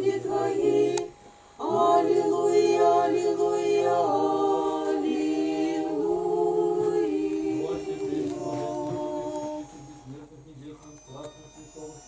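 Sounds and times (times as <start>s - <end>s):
choir singing a chant: 0.0s - 10.2s
quiet low voices: 6.7s - 12.0s.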